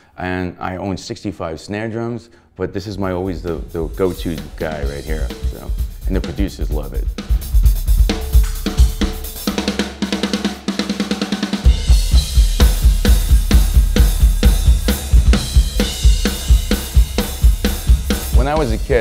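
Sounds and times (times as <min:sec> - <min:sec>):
drum kit played with sticks: 0:03.0 - 0:19.0.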